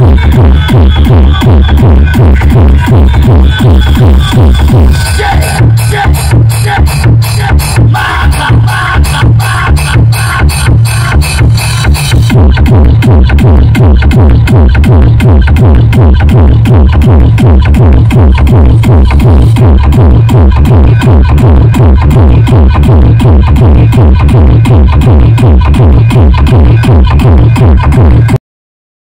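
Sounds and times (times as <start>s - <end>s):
loud electronic dance music: 0.0s - 28.4s.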